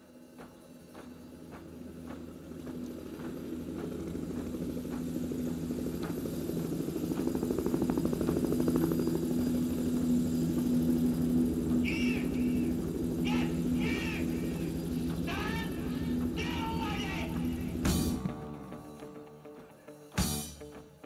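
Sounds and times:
rock band holding a chord: 9.7 - 21.0
short high shouted calls: 11.8 - 17.7.

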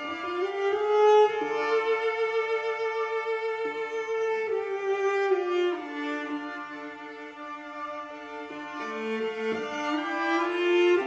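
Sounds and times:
bowed string instrument music: 0.0 - 11.0.

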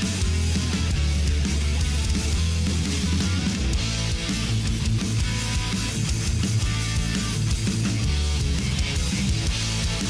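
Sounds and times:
bass guitar: 0.0 - 10.0
drums: 0.0 - 10.0
electric guitar: 0.0 - 10.0.

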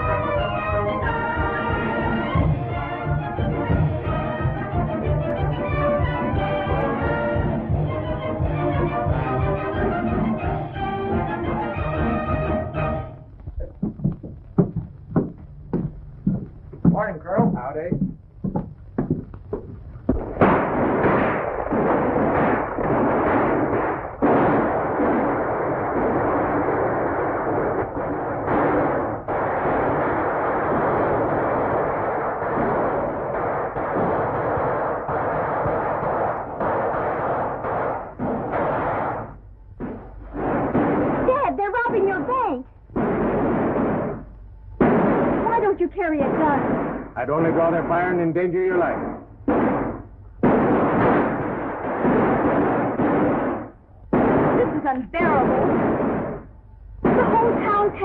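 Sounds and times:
horses galloping: 13.3 - 20.6
rapid gunshots: 20.1 - 58.0.

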